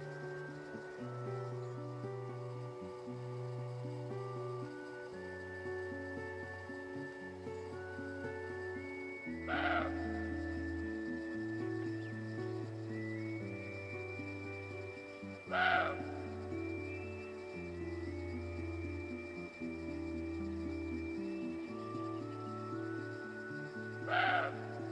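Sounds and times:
background music held notes: 0:00.0 - 0:24.9
deer barking: 0:15.5 - 0:16.0.

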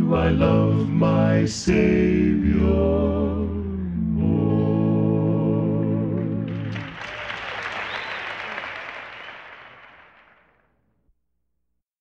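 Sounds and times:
gospel song held note: 0:00.1 - 0:10.2
audience applause: 0:06.4 - 0:10.7.

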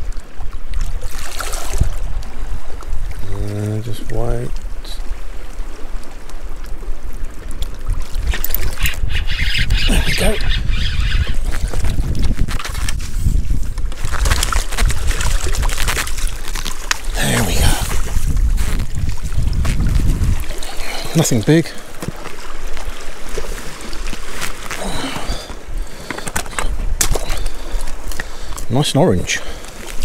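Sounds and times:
water splashing and sloshing: 0:00.0 - 0:30.0
wind buffeting microphone: 0:01.4 - 0:28.7.

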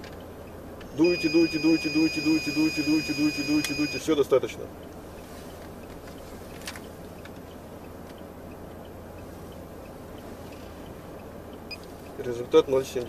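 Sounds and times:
car engine idling hum: 0:00.0 - 0:13.0.

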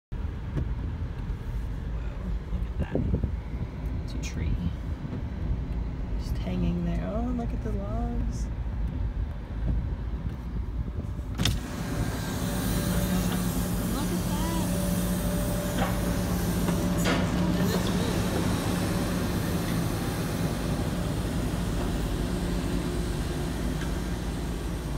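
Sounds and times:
diesel machinery rumbling: 0:00.1 - 0:24.9.

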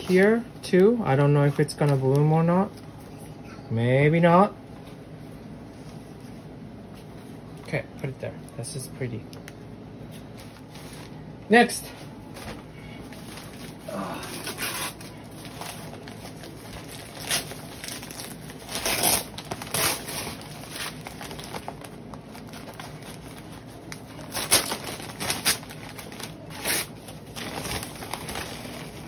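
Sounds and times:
newspaper and plastic bag rustling: 0:00.0 - 0:03.2, 0:10.0 - 0:29.0.

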